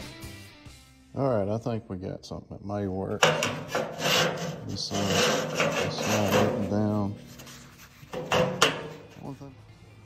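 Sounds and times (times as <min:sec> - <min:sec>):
metal plate scraping on track: 0:03.2 - 0:09.3.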